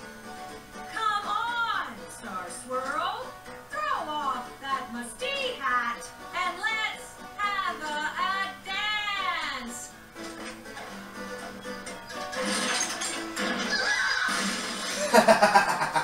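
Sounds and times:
cartoon soundtrack music: 5.3s - 16.0s
burst of laughter: 13.7s - 16.0s.

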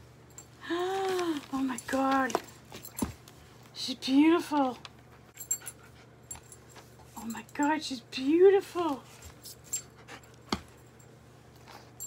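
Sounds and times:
light metallic jingling: 5.4s - 8.0s, 9.6s - 11.2s.

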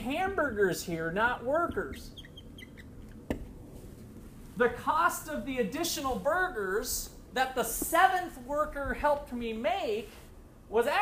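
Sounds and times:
marker squeaking on whiteboard: 1.6s - 3.3s.

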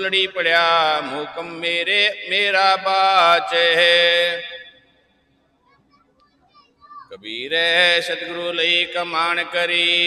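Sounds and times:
man chanting: 0.0s - 4.7s, 7.1s - 10.0s.

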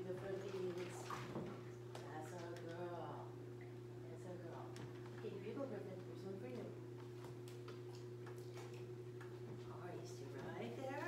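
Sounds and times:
pool equipment hum: 0.0s - 11.0s.

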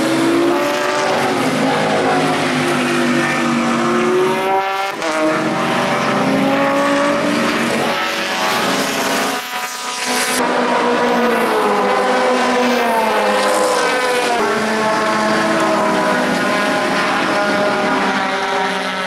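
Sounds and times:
race car engines passing: 0.0s - 19.0s.

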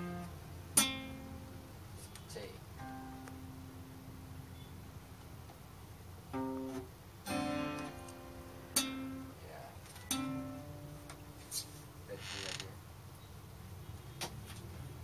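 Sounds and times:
acoustic guitar strums: 0.0s - 5.6s, 6.2s - 12.2s
short hiss: 11.4s - 11.9s.

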